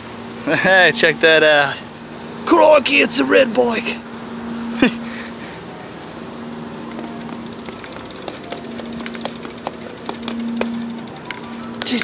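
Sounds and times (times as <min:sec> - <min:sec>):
low hum: 0:00.0 - 0:12.0
bike rattling down stairs: 0:05.4 - 0:12.0.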